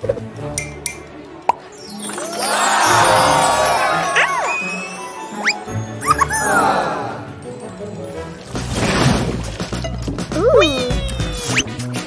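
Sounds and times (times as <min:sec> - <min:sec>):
cartoon background music: 0:00.0 - 0:12.0
meow-like cartoon vocal effect: 0:10.5 - 0:11.6.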